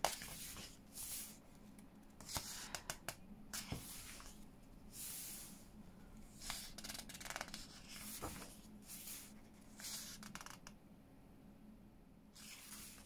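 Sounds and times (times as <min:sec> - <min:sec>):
book pages turning: 0:00.0 - 0:01.4, 0:02.2 - 0:04.4, 0:06.4 - 0:10.6, 0:12.4 - 0:13.0.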